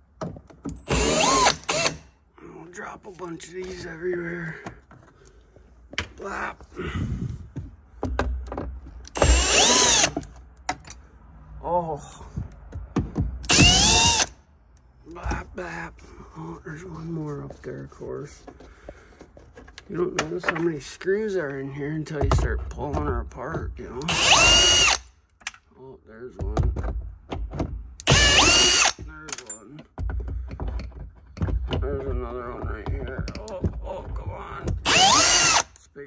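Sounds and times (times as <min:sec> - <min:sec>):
drill clicks: 0:00.7 - 0:02.1, 0:09.0 - 0:10.9, 0:13.4 - 0:14.4, 0:24.0 - 0:25.6, 0:28.0 - 0:29.5, 0:34.8 - 0:35.9
drill motor whining: 0:00.8 - 0:02.0, 0:09.1 - 0:10.2, 0:13.5 - 0:14.3, 0:24.0 - 0:25.0, 0:28.0 - 0:29.0, 0:34.8 - 0:35.7
drill motor whine spinning up: 0:34.9 - 0:35.6.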